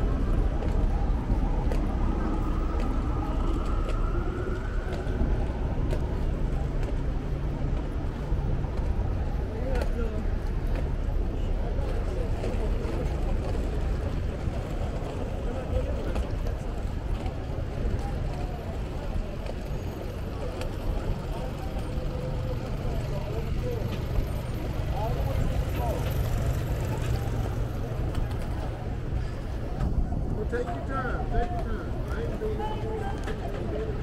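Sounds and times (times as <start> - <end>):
low traffic rumble: 0.0 - 34.0.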